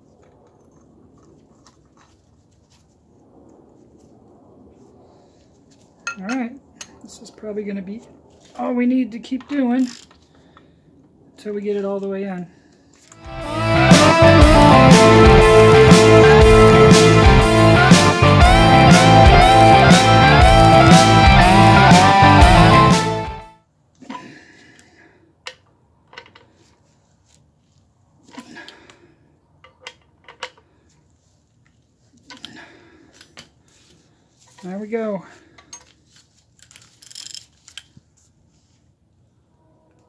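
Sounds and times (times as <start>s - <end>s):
loud rock music with guitar: 13.2s - 23.5s.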